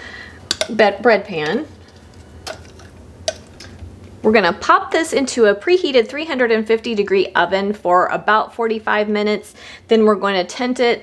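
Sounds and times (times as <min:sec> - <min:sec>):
kitchen utensil taps: 0:00.5 - 0:00.8.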